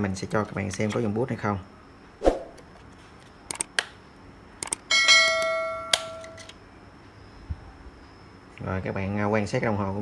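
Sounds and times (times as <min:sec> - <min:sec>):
bright metallic ring: 0:04.9 - 0:06.4.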